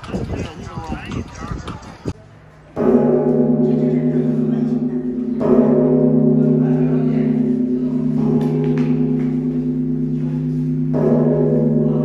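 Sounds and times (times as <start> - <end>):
large bell ringing: 2.4 - 12.0.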